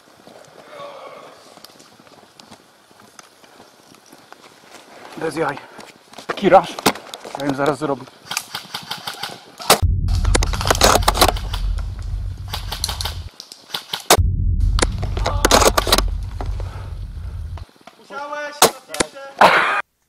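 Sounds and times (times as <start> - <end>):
microphone handling noise: 9.8 - 13.3, 14.2 - 17.6
sharp clicks and knocks: 9.8 - 13.3
wind rumble on microphone: 9.8 - 13.3, 14.2 - 17.6.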